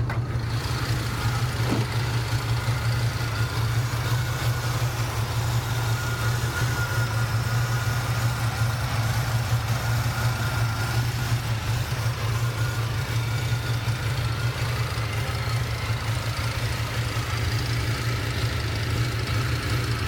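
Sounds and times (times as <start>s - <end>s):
car engine idling: 0.0s - 20.0s.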